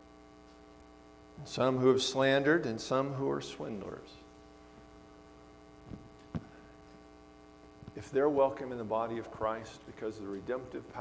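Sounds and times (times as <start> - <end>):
electrical mains hum: 0.0 - 11.0
soft thumps: 5.9 - 6.6.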